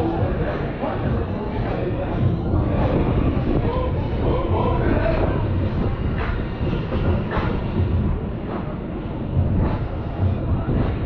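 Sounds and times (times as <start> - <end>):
ride gondola rumble: 0.0 - 11.0
wind on microphone: 0.0 - 11.0.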